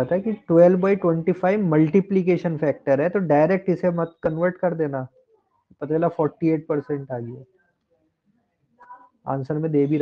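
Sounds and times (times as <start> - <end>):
man lecturing: 0.0 - 5.1, 5.8 - 7.4, 9.3 - 10.0.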